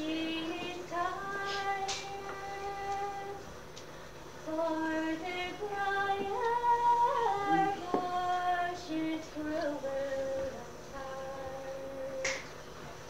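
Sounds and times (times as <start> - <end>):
woman singing unaccompanied: 0.0 - 3.5, 4.4 - 12.5.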